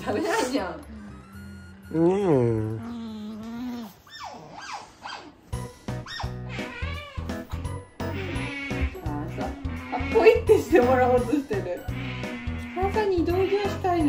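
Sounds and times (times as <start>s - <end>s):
background music: 5.5s - 14.0s
otter squeaking calls: 6.0s - 14.0s.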